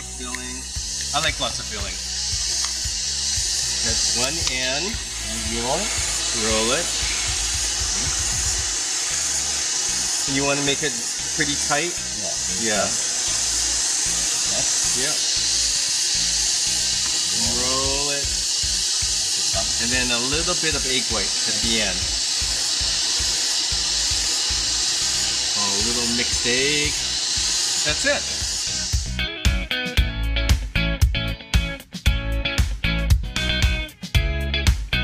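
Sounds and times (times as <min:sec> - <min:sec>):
steady high hiss: 0:00.0 - 0:30.0
music with pulsing beat: 0:01.9 - 0:06.3, 0:26.8 - 0:35.0.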